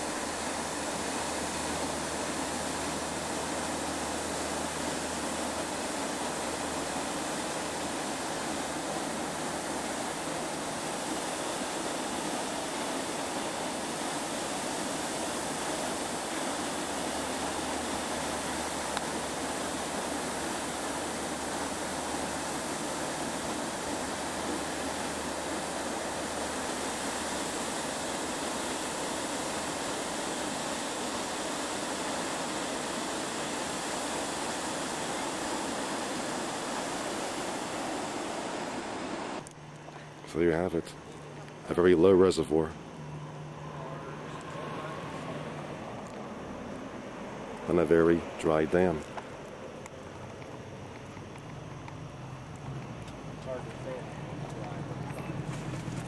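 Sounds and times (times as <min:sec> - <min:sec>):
turbulent water rushing: 0:00.0 - 0:39.4.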